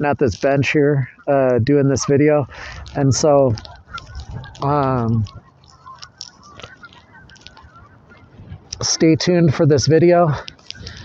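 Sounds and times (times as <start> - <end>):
flock of birds calling: 0.0 - 11.0.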